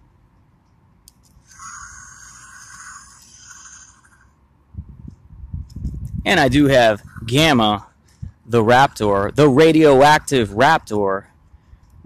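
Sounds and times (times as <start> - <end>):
toy dinosaur electronic growl: 1.4 - 4.4.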